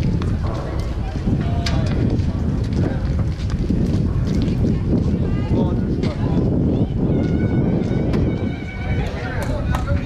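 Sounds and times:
wind rumbling on microphone: 0.0 - 10.0
people calling: 6.1 - 10.0.

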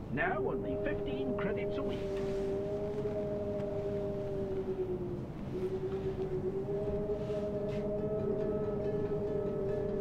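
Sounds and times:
steady pitched drone tones: 0.0 - 10.0.

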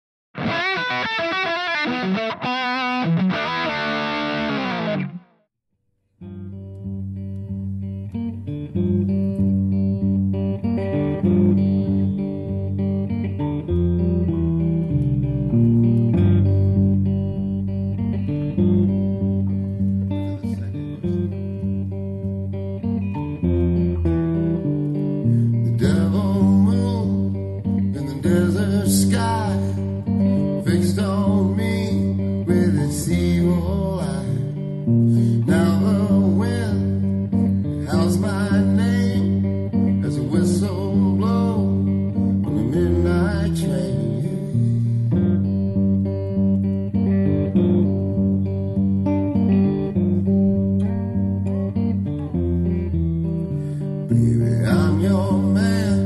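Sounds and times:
distorted electric guitar sting: 0.4 - 5.3
electric guitar playing blues: 0.4 - 5.5, 6.2 - 56.0.

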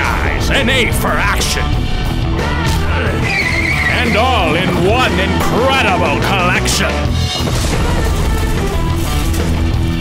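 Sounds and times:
music track: 0.0 - 10.0
car tyres squealing: 3.1 - 4.6.

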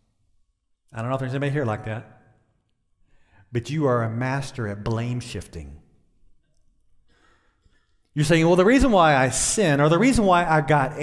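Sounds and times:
breath into microphone: 3.0 - 3.5, 7.0 - 8.2.

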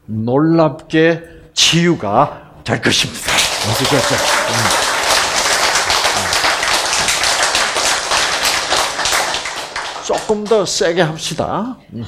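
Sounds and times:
crowd clapping: 3.2 - 11.0.

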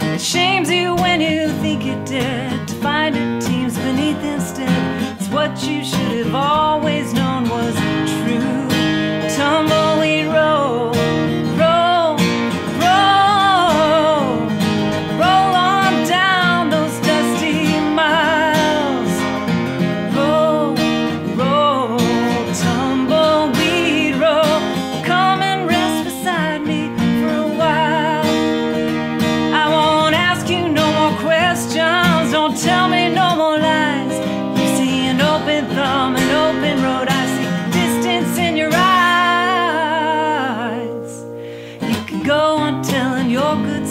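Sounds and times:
acoustic guitar strumming: 0.0 - 43.9
woman singing country song: 0.0 - 43.9.

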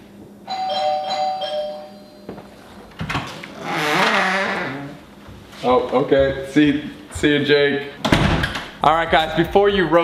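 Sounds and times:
two-tone doorbell chime: 0.5 - 2.4.

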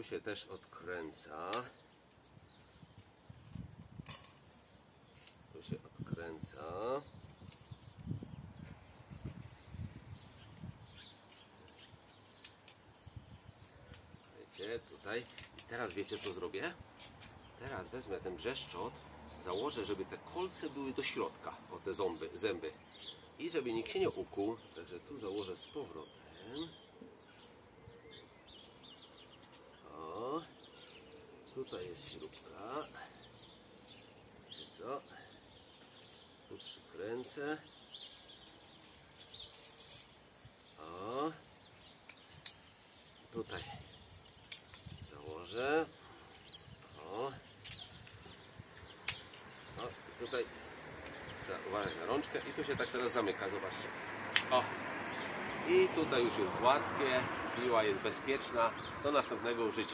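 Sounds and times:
small bird chirping: 0.6 - 59.9.

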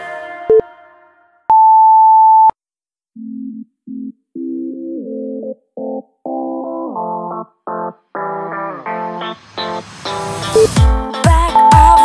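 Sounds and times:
background music: 0.0 - 1.5, 4.8 - 12.0
synth music: 4.4 - 12.0
interval timer beep: 11.6 - 12.0.

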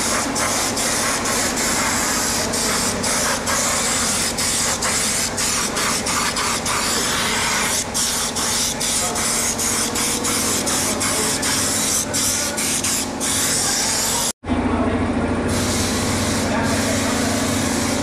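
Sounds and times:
coating gun spraying hiss: 0.0 - 14.3, 15.5 - 18.0.

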